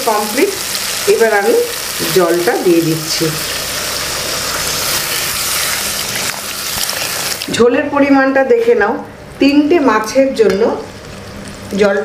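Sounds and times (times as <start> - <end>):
hot oil hissing and sizzling: 0.0 - 7.6.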